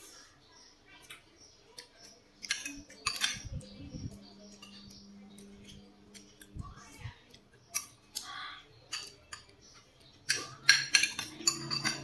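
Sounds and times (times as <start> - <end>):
cutlery clinking on dishes: 2.4 - 3.6, 8.9 - 12.0.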